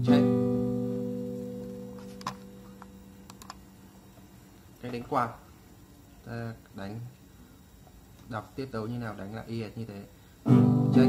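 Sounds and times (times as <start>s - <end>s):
acoustic guitar strumming: 0.0s - 3.3s, 10.4s - 11.0s.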